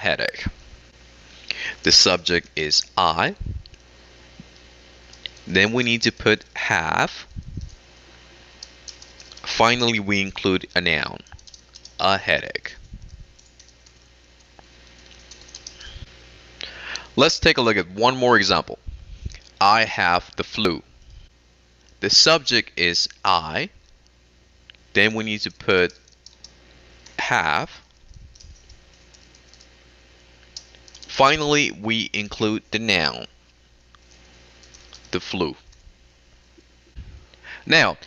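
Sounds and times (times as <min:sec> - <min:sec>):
low steady hum: 0:00.0 - 0:38.0
computer keyboard keystrokes: 0:08.6 - 0:09.5, 0:11.3 - 0:12.0, 0:13.4 - 0:14.0, 0:14.8 - 0:15.8, 0:25.8 - 0:27.2, 0:28.3 - 0:29.7, 0:30.6 - 0:31.1, 0:34.6 - 0:35.8.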